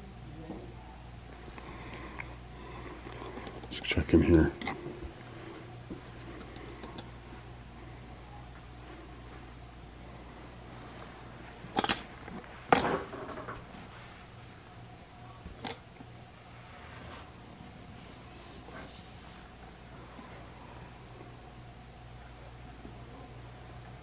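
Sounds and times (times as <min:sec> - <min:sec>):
faint low hum: 0:00.0 - 0:24.0.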